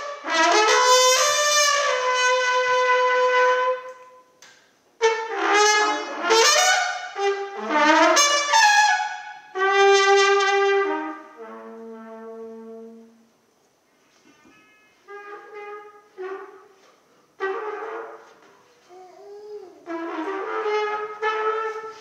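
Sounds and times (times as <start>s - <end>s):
solo trumpet improvising: 0.0s - 4.4s, 5.0s - 19.0s, 19.8s - 22.0s.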